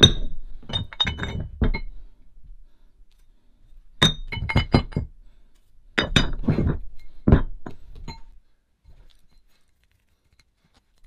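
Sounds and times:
metal weight plates clinking: 0:00.0 - 0:02.0.

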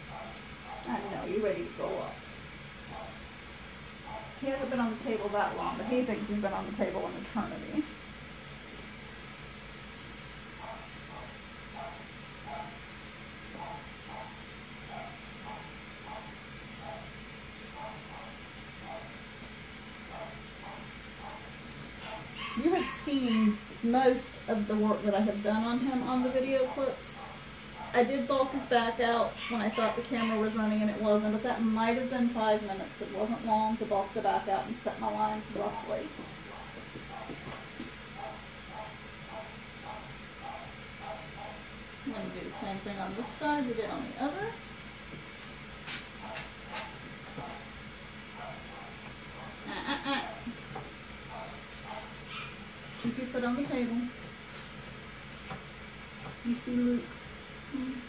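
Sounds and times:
grooming shears snipping: 0:00.1 - 0:02.1, 0:09.6 - 0:23.6, 0:25.9 - 0:31.4, 0:32.8 - 0:44.4, 0:45.8 - 0:47.7, 0:48.4 - 0:49.6, 0:51.3 - 0:56.9.

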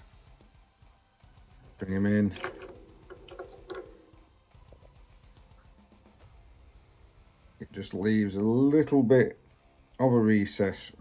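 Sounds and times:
handling clicks and rustles: 0:01.8 - 0:04.3.

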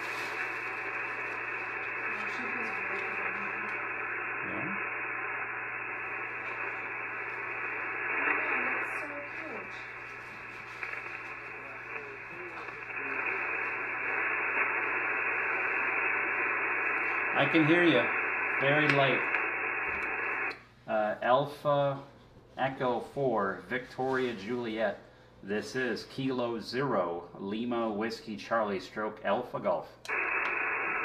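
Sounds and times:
radio static hiss: 0:00.0 - 0:22.0, 0:28.5 - 0:31.0
faint radio voice: 0:00.3 - 0:20.5.

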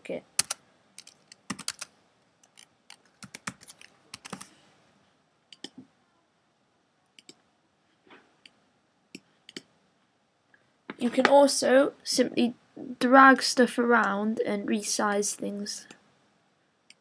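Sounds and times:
typing on computer keyboard: 0:00.4 - 0:04.5.

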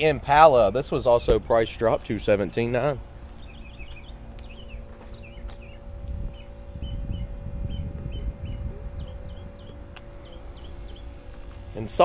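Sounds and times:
low rumble: 0:00.0 - 0:12.0
steady low hum: 0:00.0 - 0:12.0
small birds chirping: 0:02.0 - 0:12.0.

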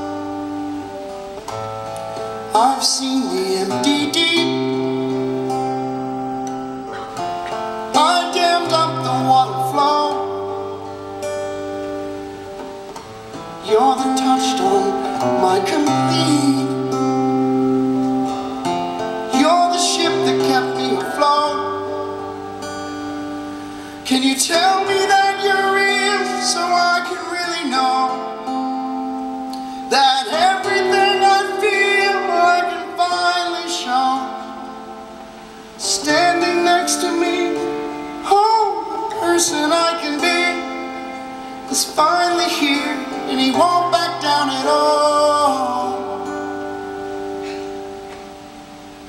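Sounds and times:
acoustic guitar strumming chords: 0:00.0 - 0:49.0.

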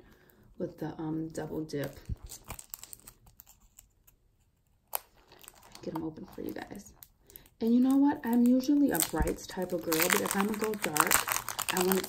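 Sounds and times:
plastic sleeve crinkling: 0:01.4 - 0:12.0.

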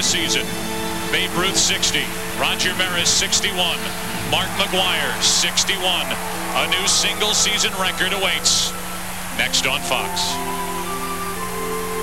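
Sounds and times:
people talking: 0:00.0 - 0:00.5, 0:01.1 - 0:10.5
steady humming tone: 0:00.0 - 0:12.0.

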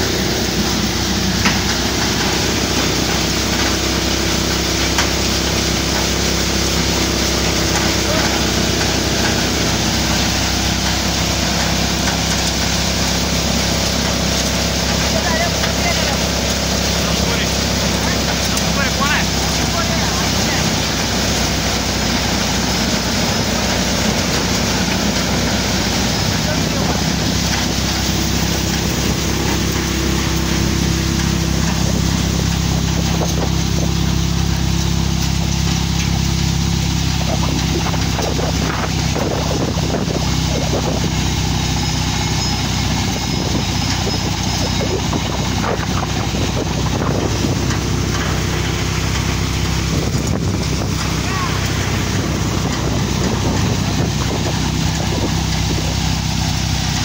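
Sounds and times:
thresher machine droning: 0:00.0 - 0:57.0.

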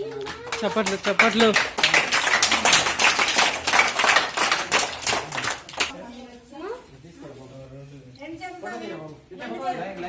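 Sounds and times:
group applauding: 0:00.0 - 0:05.9.

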